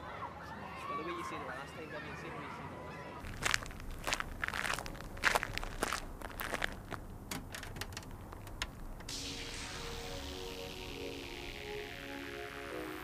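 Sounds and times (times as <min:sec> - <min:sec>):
footsteps and scuffs: 0:03.2 - 0:07.0
steady hiss: 0:08.9 - 0:13.0.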